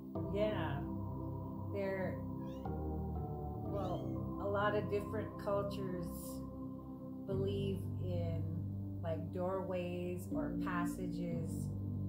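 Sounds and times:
ambient music: 0:00.0 - 0:12.0
cat meowing: 0:02.4 - 0:02.7, 0:03.7 - 0:04.3.

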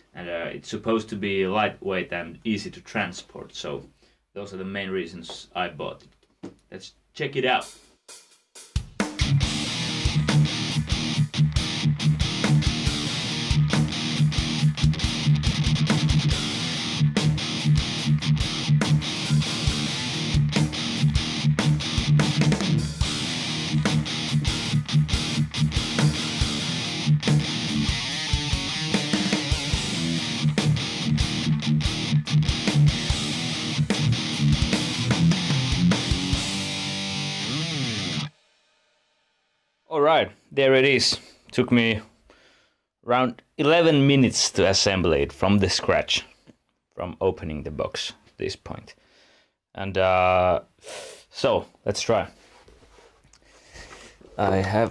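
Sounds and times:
music with electric guitar and drums: 0:07.6 - 0:38.4.

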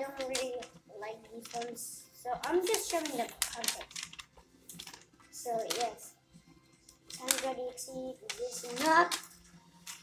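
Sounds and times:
notebook pages flipping: 0:00.0 - 0:06.0, 0:06.9 - 0:10.0.

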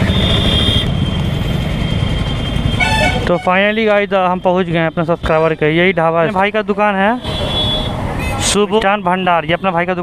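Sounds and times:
vehicle horn: 0:00.0 - 0:00.9, 0:02.8 - 0:03.5, 0:07.3 - 0:08.4
motorcycle engine: 0:00.0 - 0:04.9.

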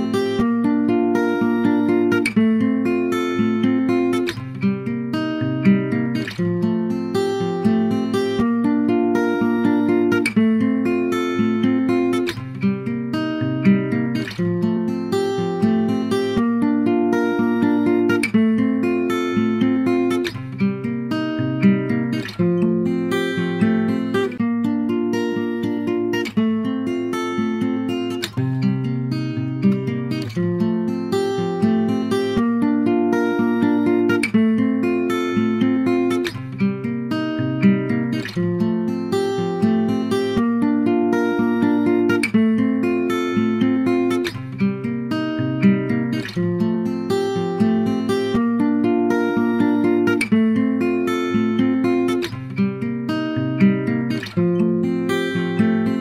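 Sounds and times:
acoustic guitar picking and strumming: 0:00.0 - 0:56.0.

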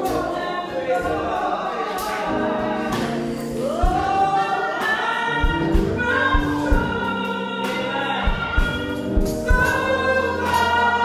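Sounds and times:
choir voices: 0:00.0 - 0:11.0
low thumping beats: 0:05.4 - 0:07.2.

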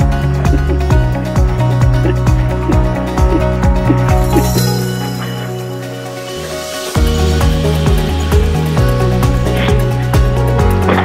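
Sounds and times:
held synth chords: 0:00.0 - 0:10.9.

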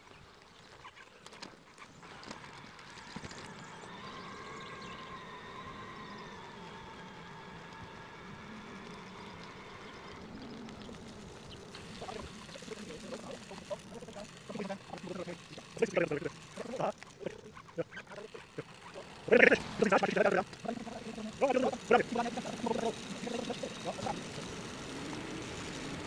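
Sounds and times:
electric bike whine: 0:00.0 - 0:26.0
choppy chattering sound: 0:09.6 - 0:26.0.

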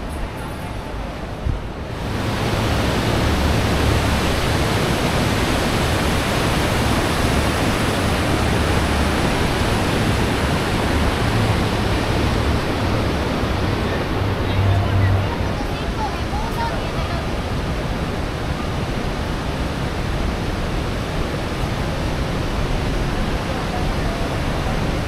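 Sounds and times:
river rushing over rocks: 0:00.0 - 0:25.0.

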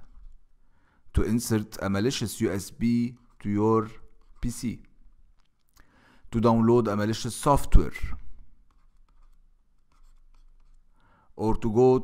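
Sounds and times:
stylus scratching on pen tablet: 0:02.5 - 0:05.4, 0:08.6 - 0:10.9.

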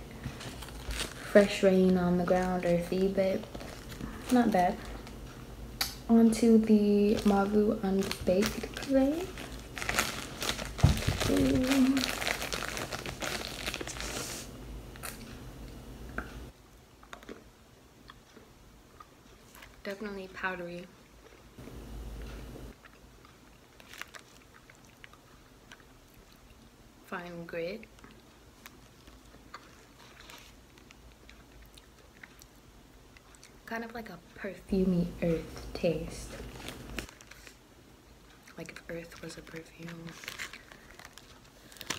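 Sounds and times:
person chewing clay: 0:00.2 - 0:01.3, 0:17.0 - 0:19.9, 0:22.2 - 0:26.8, 0:27.8 - 0:33.7, 0:36.4 - 0:41.9.

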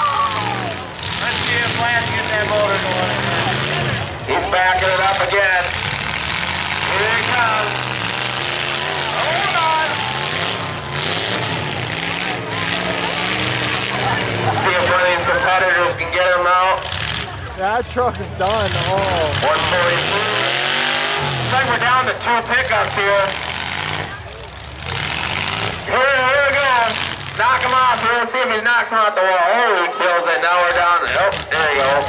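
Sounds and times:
pickup truck engines running: 0:00.0 - 0:32.0.

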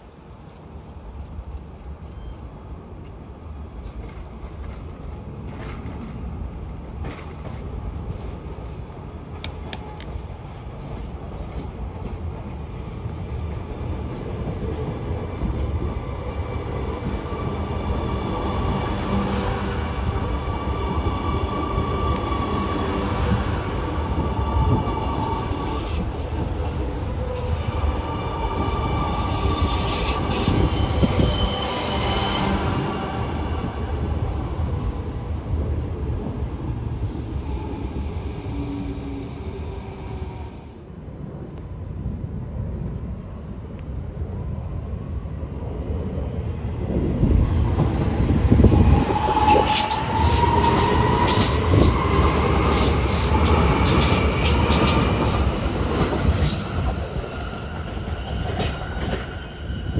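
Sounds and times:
train wheels rumbling on rails: 0:00.0 - 0:44.0, 0:45.1 - 0:59.9.

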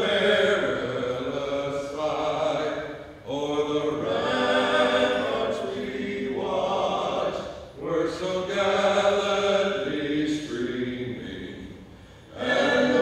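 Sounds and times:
men singing a cappella: 0:00.0 - 0:13.0.

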